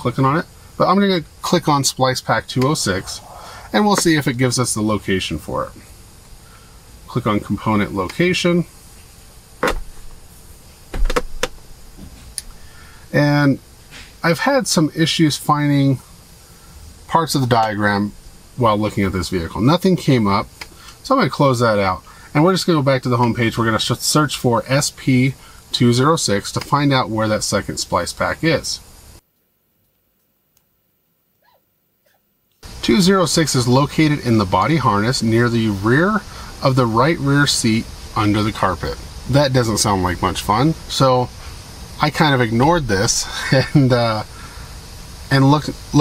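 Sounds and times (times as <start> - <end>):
dull low thump: 9.6 - 10.1.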